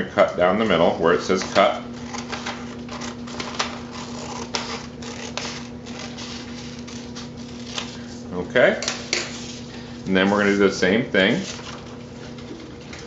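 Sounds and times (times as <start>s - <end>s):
scissors cutting paper: 1.3s - 8.1s.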